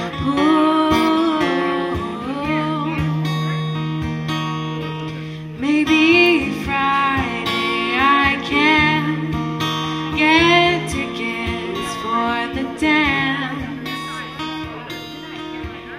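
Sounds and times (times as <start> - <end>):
person singing with vibrato: 0.0 - 3.4, 5.3 - 14.3
acoustic guitar: 0.0 - 15.9.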